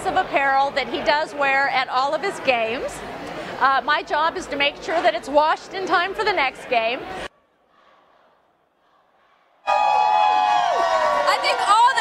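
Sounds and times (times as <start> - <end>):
crowd cheering and yelling: 9.6 - 12.0.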